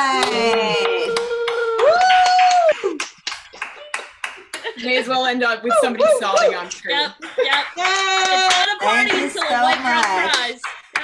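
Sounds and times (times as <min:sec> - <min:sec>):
people cheering: 0:00.0 - 0:04.8, 0:05.6 - 0:11.0
people clapping: 0:00.0 - 0:11.0.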